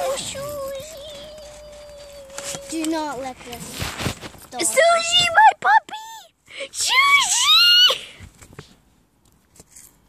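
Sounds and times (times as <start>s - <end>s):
child squealing: 6.0s - 8.0s.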